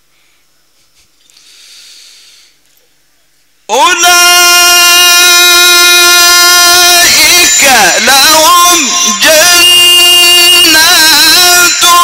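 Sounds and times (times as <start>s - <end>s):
man reciting melodically: 3.6s - 12.0s.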